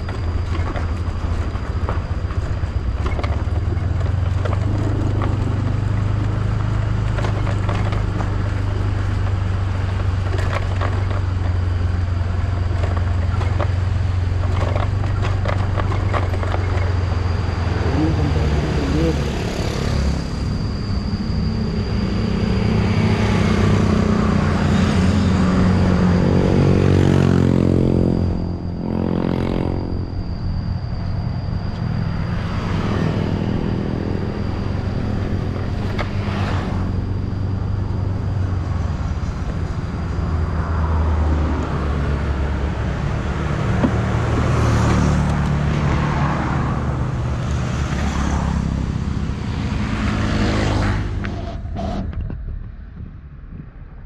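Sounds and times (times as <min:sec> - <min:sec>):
cars and motorcycles passing: 0:00.0 - 0:54.0
thin steady high tone: 0:16.6 - 0:43.2.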